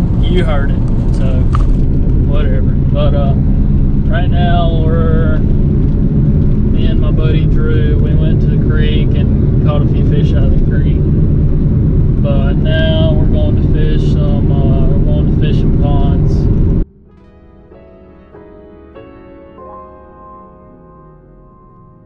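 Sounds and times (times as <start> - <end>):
car cabin road rumble: 0.0 - 17.0
man talking: 0.2 - 1.6, 2.3 - 3.5, 4.1 - 5.5, 6.7 - 11.1, 12.2 - 16.5
soft music: 16.8 - 22.0.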